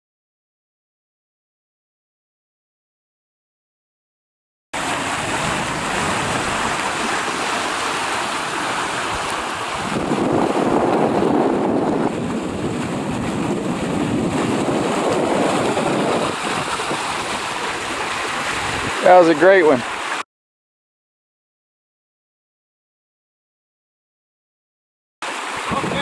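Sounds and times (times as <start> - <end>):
wind buffeting microphone: 4.8 - 19.8, 25.5 - 26.0
water rushing along hulls: 4.8 - 20.2, 25.2 - 26.0.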